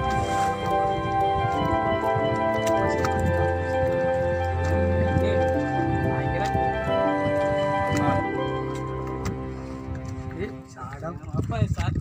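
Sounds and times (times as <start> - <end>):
background music sustained tones: 0.0 - 11.3.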